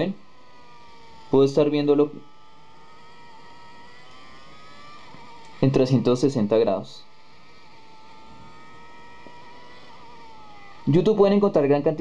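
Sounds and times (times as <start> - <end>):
faint engine drone from small speaker: 0.0 - 12.0.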